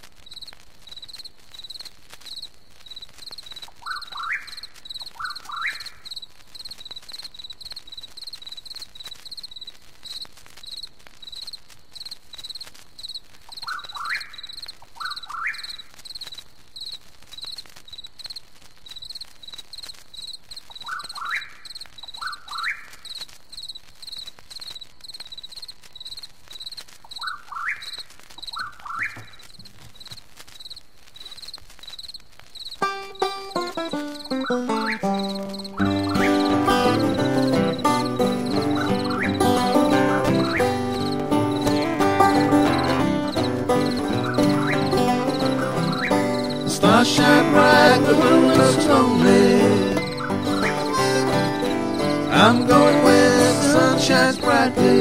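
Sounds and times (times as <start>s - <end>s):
high insect chirp: 0.0s - 55.0s
frog rising calls: 34.3s - 55.0s.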